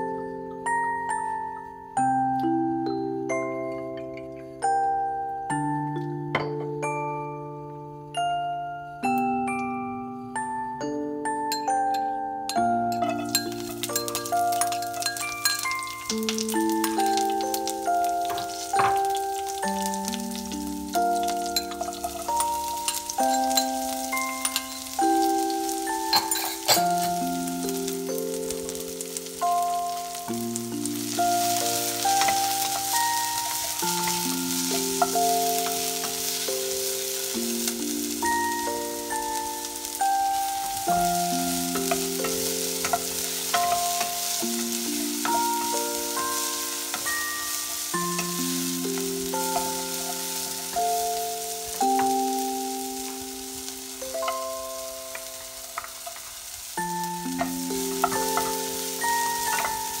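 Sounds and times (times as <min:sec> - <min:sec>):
slow instrumental tune: 0:00.0 - 1:00.0
onions sizzling in oil: 0:12.5 - 1:00.0.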